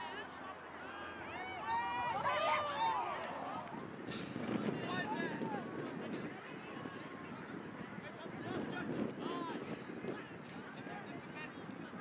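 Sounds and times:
open-air background noise: 0:00.0 - 0:12.0.

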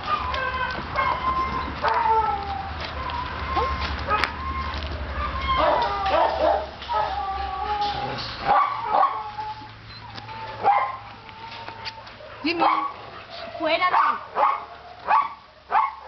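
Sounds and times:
dogs barking and yipping: 0:00.0 - 0:16.0
dogs whining: 0:00.0 - 0:16.0.

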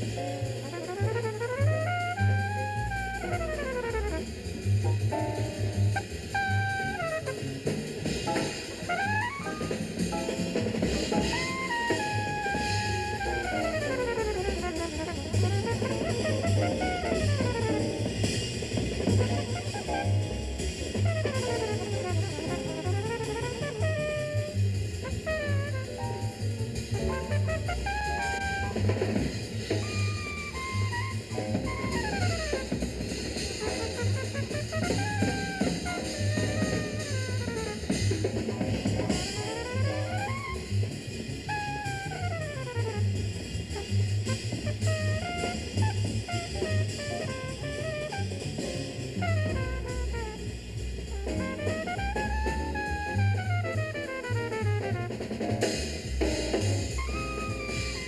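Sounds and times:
bass line: 0:00.0 - 0:58.0
drum kit with cymbals: 0:00.0 - 0:58.0
trumpet solo: 0:00.0 - 0:58.0.

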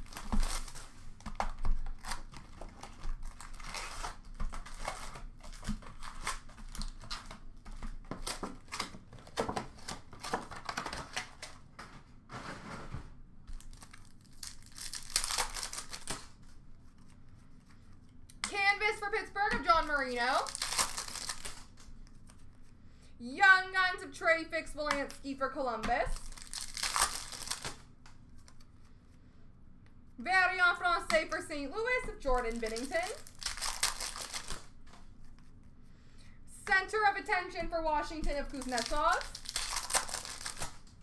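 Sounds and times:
wrappers crinkling and tearing: 0:00.0 - 0:11.7, 0:13.5 - 0:17.7, 0:19.7 - 0:22.8, 0:26.1 - 0:28.7, 0:31.8 - 0:35.6, 0:38.2 - 0:41.0
cards and cardboard rustling: 0:00.0 - 0:18.2, 0:19.0 - 0:22.8, 0:25.8 - 0:29.0, 0:30.9 - 0:35.6, 0:36.7 - 0:40.9
person speaking: 0:18.3 - 0:20.6, 0:23.2 - 0:26.2, 0:30.2 - 0:33.2, 0:36.5 - 0:39.4.

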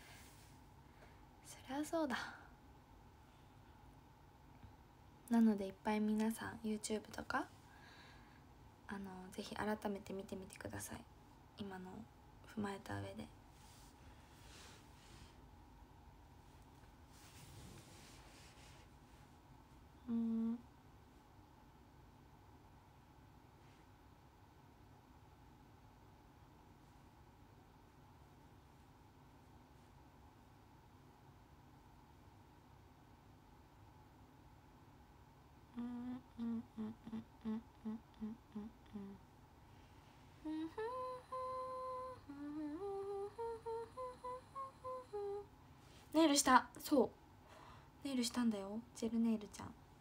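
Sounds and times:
woman humming: 0:20.0 - 0:20.7, 0:35.7 - 0:39.3, 0:40.4 - 0:45.5.

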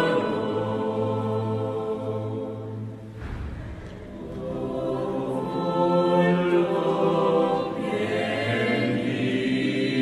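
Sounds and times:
choir singing held chords: 0:00.0 - 0:10.0.

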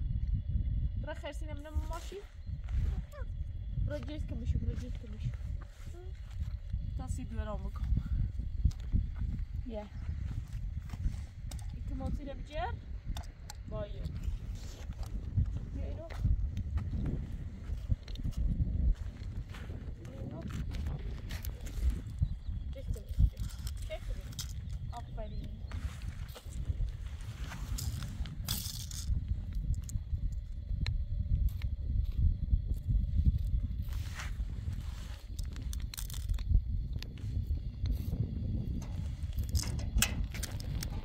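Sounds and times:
wind buffeting microphone: 0:00.0 - 0:41.0
small child's voice: 0:02.8 - 0:03.4, 0:05.9 - 0:06.2
plastic spoon and cup in sand: 0:21.3 - 0:29.9, 0:33.8 - 0:38.2.

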